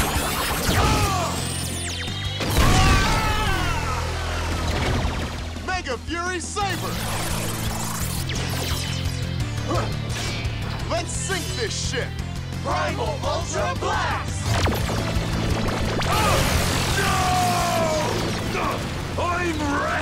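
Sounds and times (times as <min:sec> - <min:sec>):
action soundtrack music: 0:00.0 - 0:20.0
wavering vocal shout: 0:02.8 - 0:04.6, 0:16.1 - 0:18.8.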